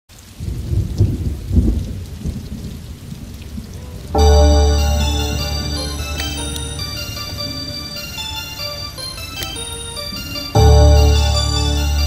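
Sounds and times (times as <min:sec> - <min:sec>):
rain: 0:00.1 - 0:12.0
thunder rumbling: 0:00.4 - 0:12.0.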